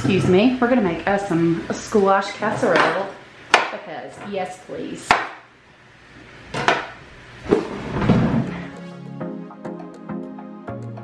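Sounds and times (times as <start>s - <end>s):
knife chopping on wooden board: 3.5s - 3.8s, 5.1s - 5.4s.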